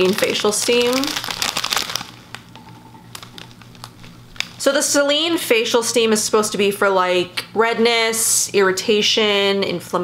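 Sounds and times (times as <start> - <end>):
plastic bag crinkling: 0.0 - 4.7.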